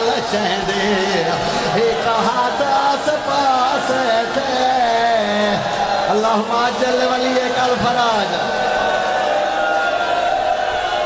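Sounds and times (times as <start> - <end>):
man chanting over loudspeaker: 0.0 - 8.6.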